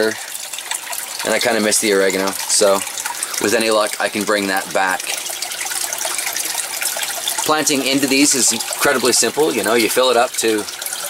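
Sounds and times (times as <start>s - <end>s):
water running and trickling: 0.0s - 11.0s.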